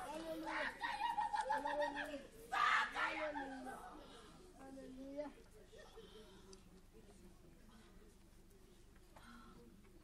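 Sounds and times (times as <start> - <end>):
faint overlapping hummed voices: 0.0 - 10.0.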